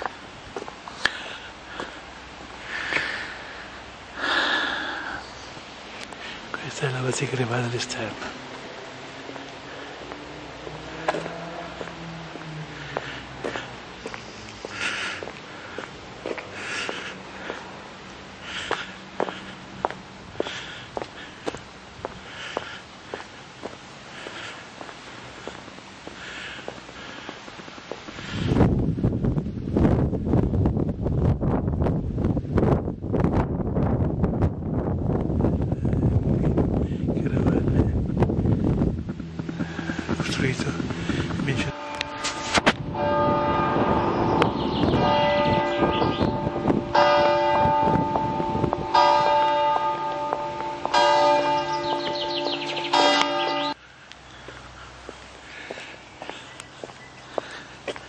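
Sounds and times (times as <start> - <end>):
loud rough noise: 35.8 - 47.0
church bells ringing: 40.2 - 53.8.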